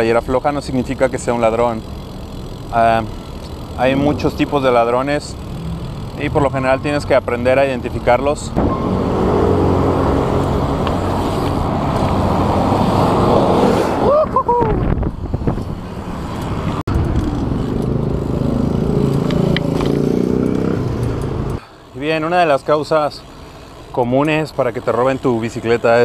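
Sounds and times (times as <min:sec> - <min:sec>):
street traffic: 0:00.0 - 0:26.0
vehicle engine humming: 0:00.0 - 0:26.0
wind rushing over microphone: 0:08.5 - 0:19.0
rising and falling pitched sound: 0:08.6 - 0:11.2.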